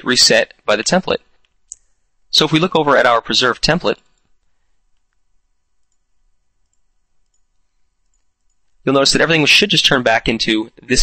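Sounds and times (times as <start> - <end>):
computer mouse clicks: 5.8 - 8.8.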